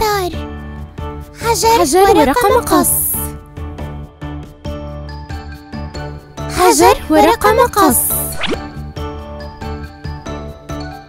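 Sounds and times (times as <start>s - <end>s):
upbeat children's music: 0.0s - 11.0s
rising pop sound effect: 8.1s - 8.8s.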